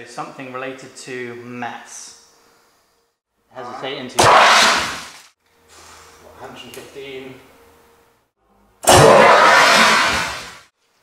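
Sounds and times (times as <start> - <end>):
gunge cannon blast: 4.2 - 5.1.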